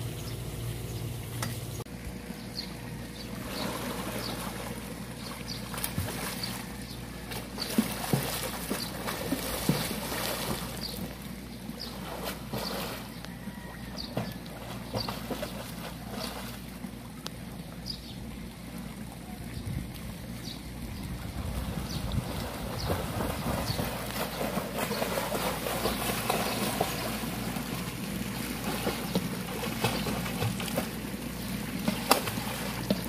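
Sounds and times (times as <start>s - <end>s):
swimmer splashing in pool: 5.7s - 11.2s, 21.5s - 33.0s.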